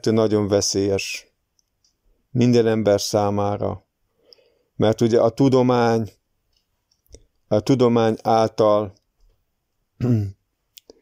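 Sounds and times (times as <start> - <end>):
person hesitating: 10.0 - 10.4
mouth clicks: 10.0 - 11.0.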